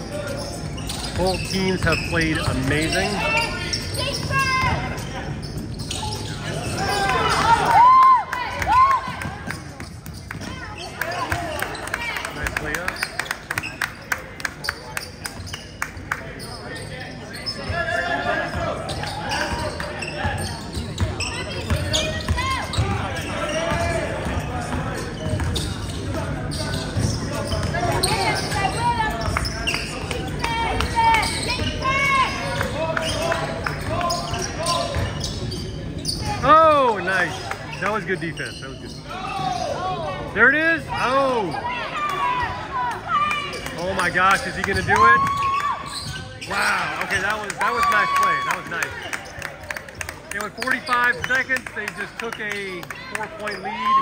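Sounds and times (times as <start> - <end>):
sneakers squeaking: 0.0 - 54.0.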